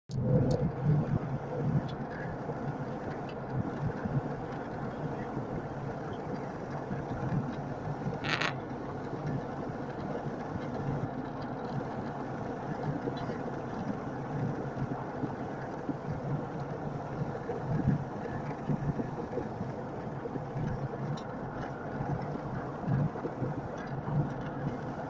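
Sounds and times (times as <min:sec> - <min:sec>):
airliner cabin engine drone: 0:00.1 - 0:25.0.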